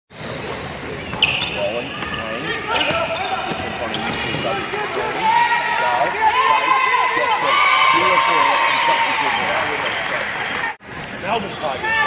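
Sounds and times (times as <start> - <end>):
sneakers squeaking: 0.1 - 5.2, 5.9 - 6.4, 10.8 - 11.8
players' voices: 0.1 - 12.0.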